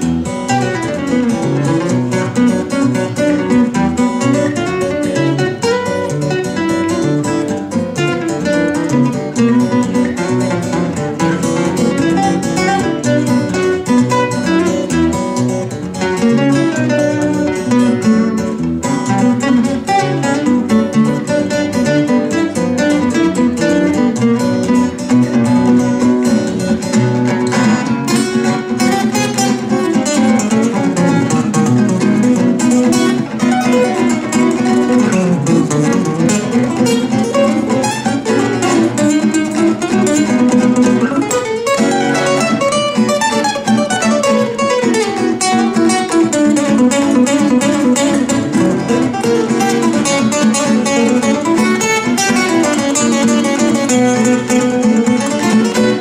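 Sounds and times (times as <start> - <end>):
jazz guitar solo: 0.0 - 56.0
strummed guitar chords: 0.0 - 56.0.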